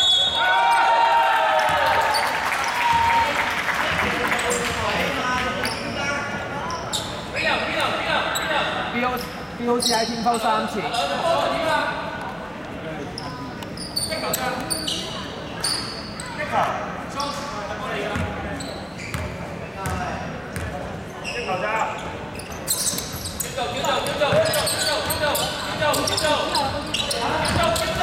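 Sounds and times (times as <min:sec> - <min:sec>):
players' voices: 0:01.7 - 0:28.0.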